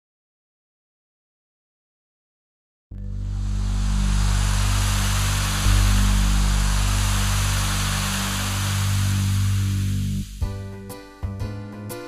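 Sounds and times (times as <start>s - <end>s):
low electronic chord: 2.9s - 10.9s
steady hiss: 3.1s - 10.8s.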